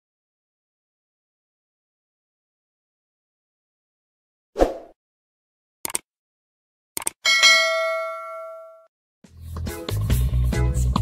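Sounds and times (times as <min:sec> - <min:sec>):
notification bell ding: 0:07.3 - 0:08.9.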